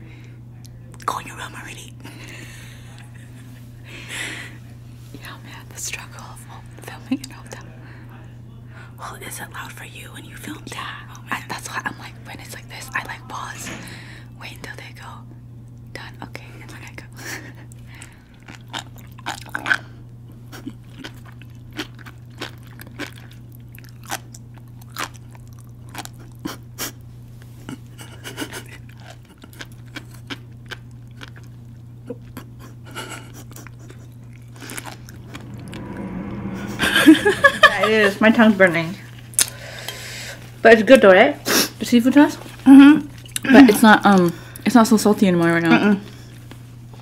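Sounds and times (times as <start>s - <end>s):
steady low hum: 0.0s - 47.0s
seaweed beads crackling while chewed: 18.4s - 19.8s, 20.6s - 26.4s, 28.8s - 31.6s.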